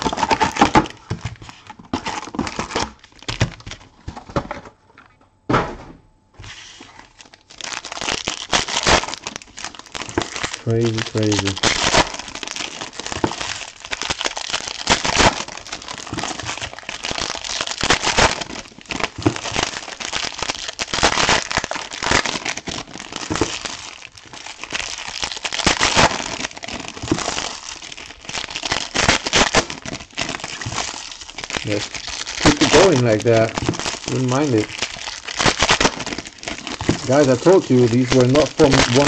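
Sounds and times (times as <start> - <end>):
foil wrappers crinkling: 0.0 - 4.6, 6.4 - 39.0.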